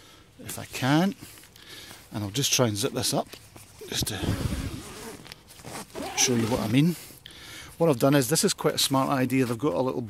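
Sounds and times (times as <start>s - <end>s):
tent fabric rustling: 1.0s - 7.1s
zip being pulled: 3.9s - 7.0s.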